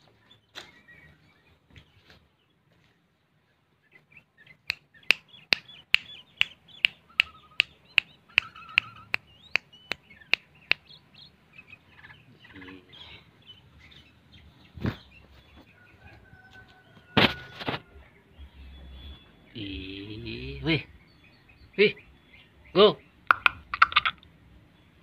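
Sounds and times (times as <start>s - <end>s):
songbird clicks and chirps: 3.8s - 25.0s.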